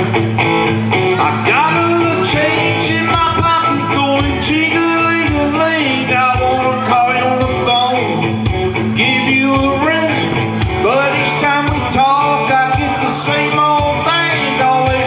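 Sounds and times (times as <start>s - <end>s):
guitar accompaniment: 0.0s - 15.0s
man singing country song: 1.0s - 15.0s.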